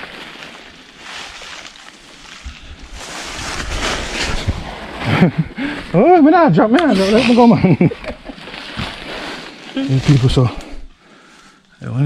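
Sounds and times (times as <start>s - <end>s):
footsteps crunching through dry leaves: 0.0s - 4.9s.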